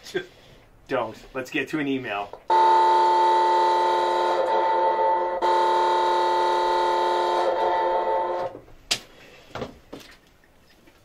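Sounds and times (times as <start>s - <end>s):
loud horn blare: 2.5s - 8.6s.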